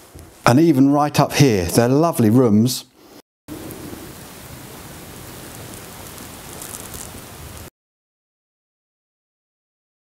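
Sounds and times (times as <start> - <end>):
steady background hiss: 0.0 - 7.7.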